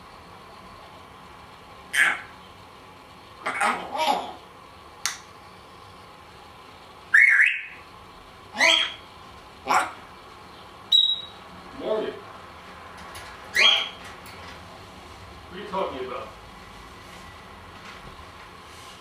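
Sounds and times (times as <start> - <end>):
parrot chattering: 1.9 - 2.4, 3.4 - 4.5, 7.1 - 7.8, 8.5 - 10.1, 10.9 - 11.4, 13.5 - 14.0
parrot high whistle: 7.1 - 7.8, 8.6 - 9.0, 10.9 - 11.4, 13.6 - 13.9.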